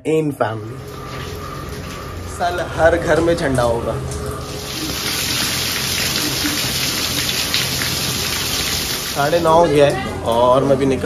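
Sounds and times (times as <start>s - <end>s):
heavy rain on hard surfaces: 0.8s - 10.0s.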